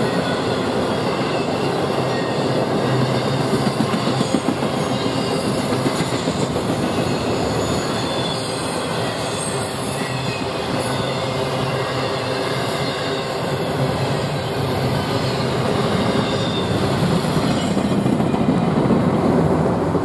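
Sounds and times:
train wheels on rails: 0.0s - 20.0s.

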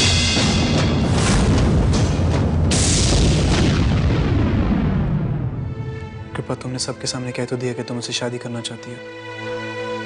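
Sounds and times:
booming drum hits: 0.0s - 5.7s
loud crash: 0.0s - 5.7s
dramatic background score: 0.0s - 10.0s.

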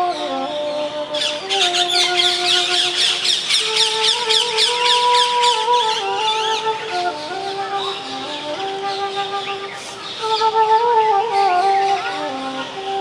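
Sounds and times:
bamboo flute melody: 0.0s - 13.0s
birds chirping: 0.0s - 13.0s.

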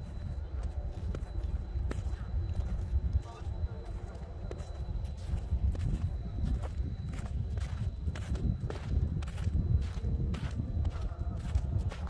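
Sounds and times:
footsteps crunching on snow: 0.0s - 12.0s
steady low rumble: 0.0s - 12.0s.

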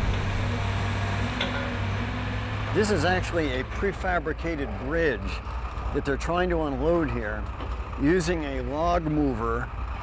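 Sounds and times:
low rumble: 0.0s - 1.2s.

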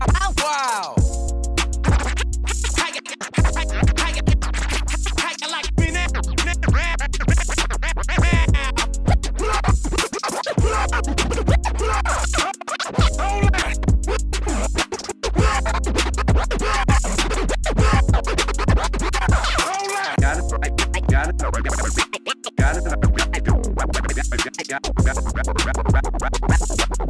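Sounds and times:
hip-hop beat with heavy bass: 0.0s - 27.0s
turntable scratching: 0.0s - 27.0s.

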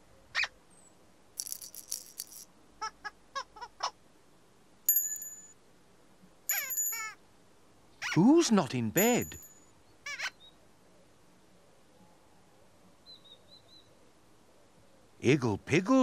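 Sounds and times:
rattling shake: 1.4s - 2.4s
bell-like chime: 4.9s - 5.6s, 6.5s - 7.1s, 9.0s - 9.7s
cartoon squeaks: 6.5s - 7.2s, 8.0s - 8.2s.

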